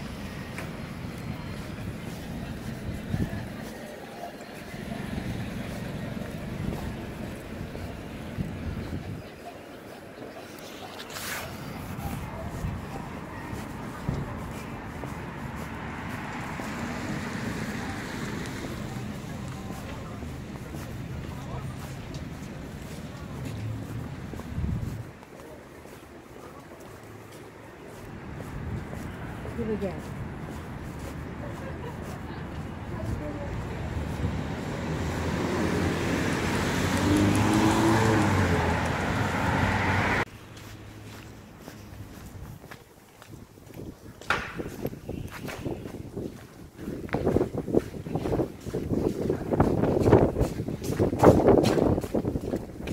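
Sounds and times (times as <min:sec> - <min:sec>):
wind rumbling on microphone: 0:00.0 - 0:03.7, 0:05.0 - 0:09.5, 0:11.1 - 0:25.4, 0:41.1 - 0:52.9
road traffic passing: 0:00.0 - 0:52.9
vehicle passing on wet road: 0:13.9 - 0:25.0, 0:32.9 - 0:41.5.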